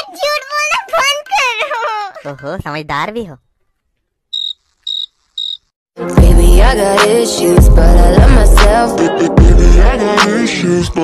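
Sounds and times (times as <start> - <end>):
cricket chirping: 4.3 - 5.7.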